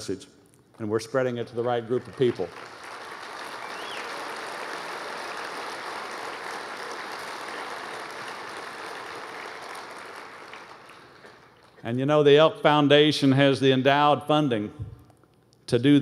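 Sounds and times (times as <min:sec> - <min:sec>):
large audience applauding: 0:01.4 - 0:11.8.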